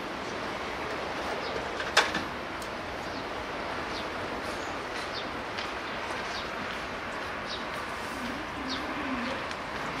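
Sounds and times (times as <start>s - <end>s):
bird cooing: 8.3s - 9.4s.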